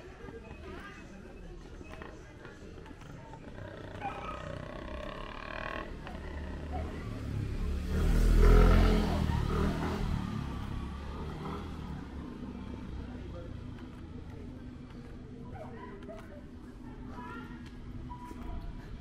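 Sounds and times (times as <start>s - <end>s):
motorcycle passing by: 3.5s - 14.4s.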